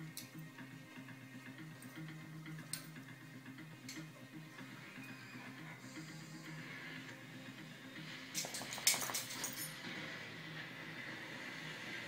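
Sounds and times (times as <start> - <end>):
television low musical notes: 0.0 - 12.0.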